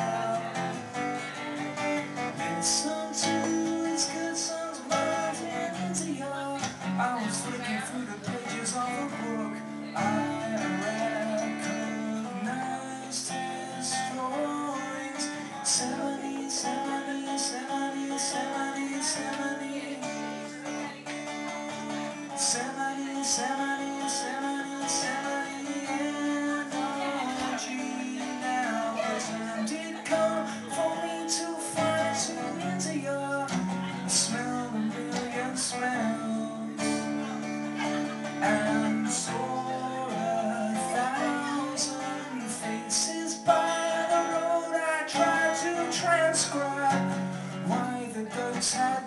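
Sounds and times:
acoustic guitar strumming chords: 0.0s - 49.0s.

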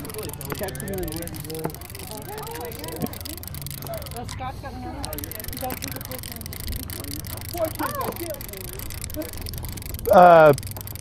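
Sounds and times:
boat motor humming: 0.0s - 11.0s
indistinct voices talking: 0.0s - 11.0s.

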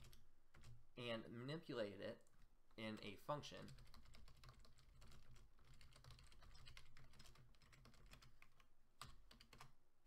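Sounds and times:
keyboard typing: 0.0s - 0.8s, 2.2s - 9.8s.

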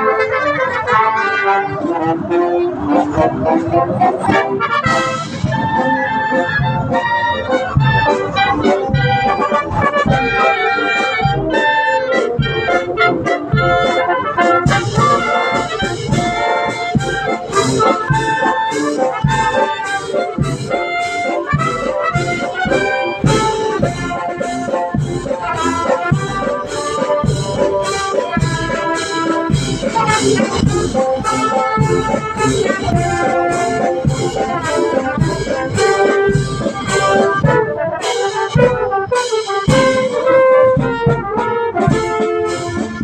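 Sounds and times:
marching brass band playing: 0.0s - 43.0s
steady drum beat: 2.4s - 43.0s.

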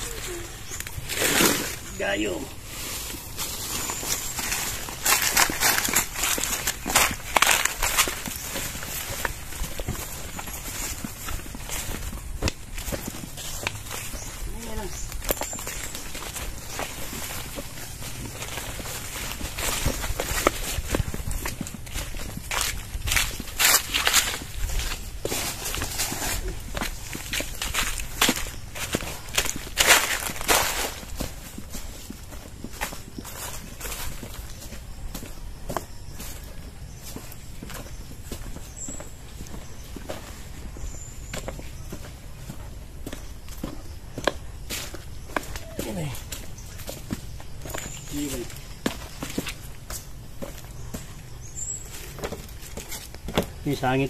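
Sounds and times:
footsteps through grass and dry leaves: 0.0s - 54.0s.

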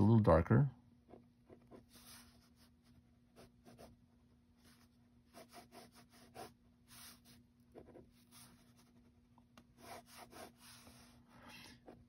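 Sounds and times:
pen scratching on paper: 1.1s - 4.0s, 4.6s - 9.0s, 9.8s - 12.0s.

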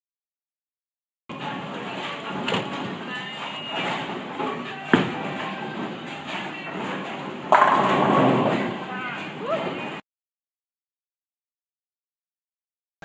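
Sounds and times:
bowling pins clattering: 1.3s - 10.0s
people chattering: 1.3s - 10.0s
bowling ball sharp knock: 7.5s - 8.7s.

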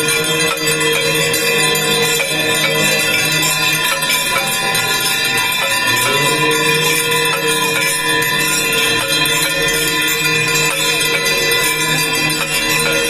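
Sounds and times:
ritual bells jangling: 0.0s - 13.0s.

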